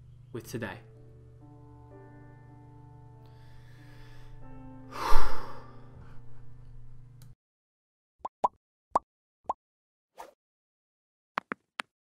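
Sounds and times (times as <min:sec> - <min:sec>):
low hum: 0:05.5 - 0:07.4.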